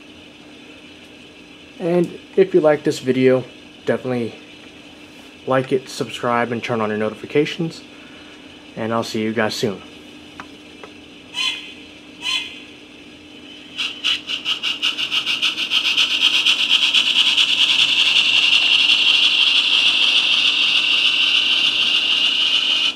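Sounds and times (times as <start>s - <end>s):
faint steady hum: 0.0s - 22.9s
model steam train rhythmic rasping: 13.8s - 22.9s.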